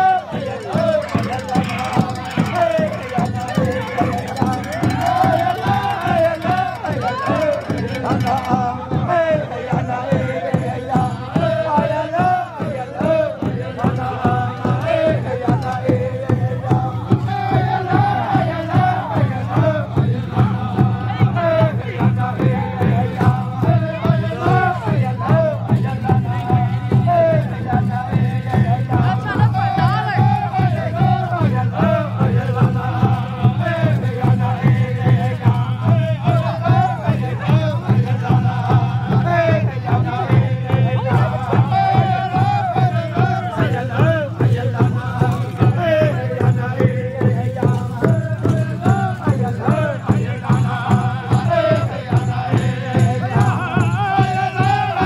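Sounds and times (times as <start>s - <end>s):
crowd noise: 0.0s - 55.0s
quick steady drumbeat: 0.0s - 55.0s
voices chanting together: 0.0s - 55.0s.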